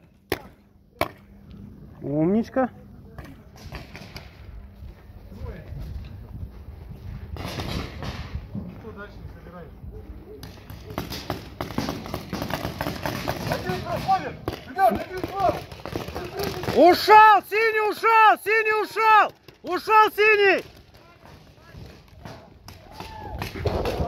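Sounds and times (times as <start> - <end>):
balls smacking bunkers: 10.4 - 17.1
paintball markers firing: 10.4 - 17.1
distant players shouting: 13.3 - 23.6.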